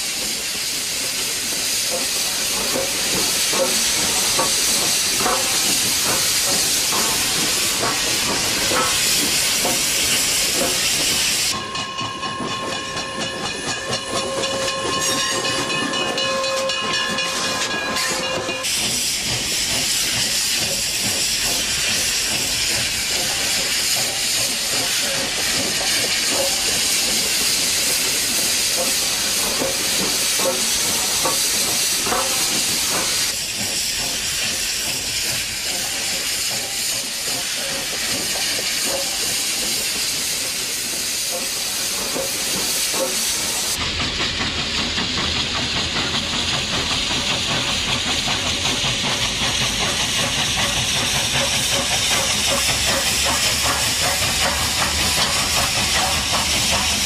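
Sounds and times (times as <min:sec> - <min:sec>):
steam locomotive hissing: 0:00.0 - 0:57.0.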